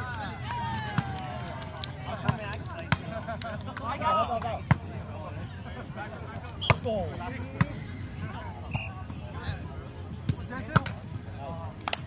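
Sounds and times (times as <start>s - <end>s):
people shouting and chatting: 0.0s - 12.0s.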